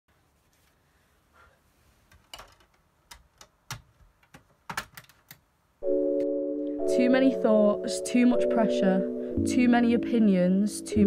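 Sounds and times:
plastic clicks and clunks: 2.1 - 5.4
music with held chords: 5.8 - 11.0.

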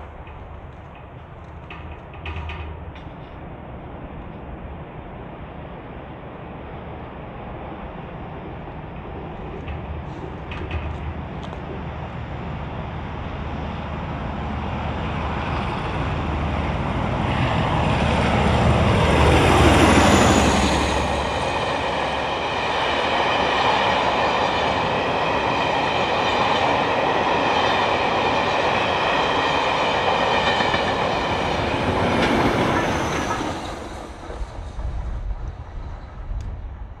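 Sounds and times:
wheel-on-rail clatter: 0.0 - 3.5, 8.6 - 12.1
high ringing of rails: 0.0 - 36.9
diesel locomotive passing: 0.0 - 37.0.

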